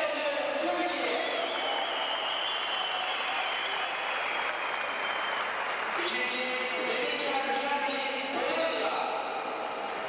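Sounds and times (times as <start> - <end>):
crowd applauding: 1.3 - 7.1, 9.6 - 10.0.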